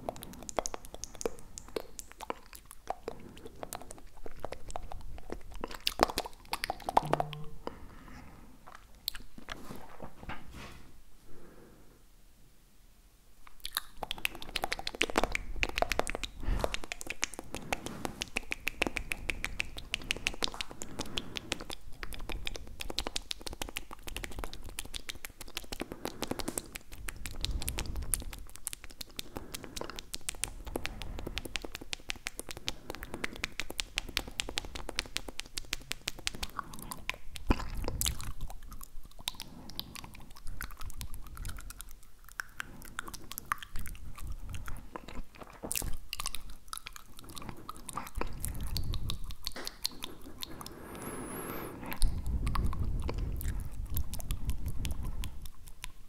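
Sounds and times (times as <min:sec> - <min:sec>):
wet tongue and mouth clicks: 0:00.0 - 0:10.0, 0:13.4 - 0:56.0.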